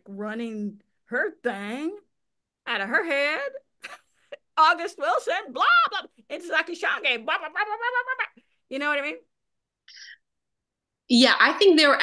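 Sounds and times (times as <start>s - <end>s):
woman speaking: 4.6s - 9.3s.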